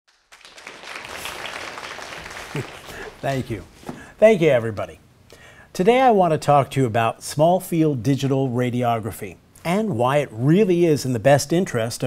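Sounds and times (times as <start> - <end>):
audience applauding: 0.1 - 3.6.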